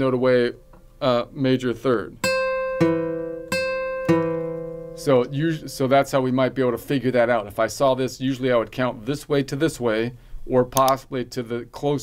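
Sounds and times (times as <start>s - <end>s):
acoustic guitar notes plucked: 2.2s - 6.2s.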